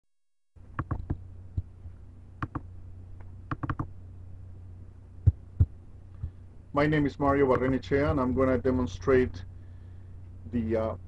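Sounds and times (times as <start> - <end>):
low electrical hum: 0.6 - 11.0
computer mouse clicking: 0.8 - 1.7, 2.4 - 2.6, 3.5 - 3.9.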